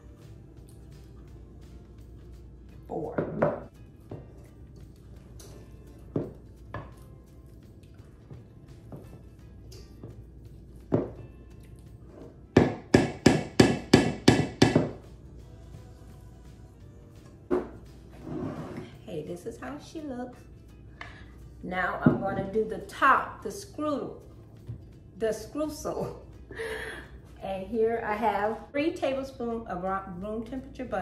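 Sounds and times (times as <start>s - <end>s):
soft background music: 0.0s - 31.0s.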